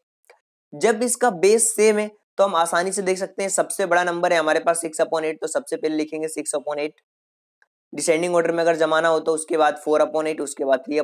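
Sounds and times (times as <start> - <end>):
man speaking: 0.8 - 7.0, 8.0 - 11.0.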